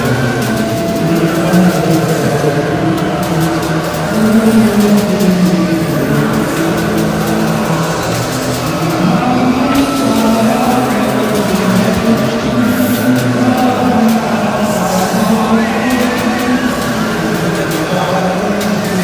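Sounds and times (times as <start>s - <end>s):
distorted electric guitar: 0.0s - 19.0s
drums and cymbals: 0.0s - 19.0s.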